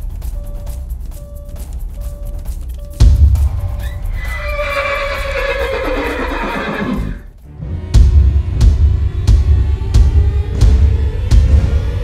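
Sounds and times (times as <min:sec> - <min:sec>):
horse whinny: 0:04.2 - 0:07.2.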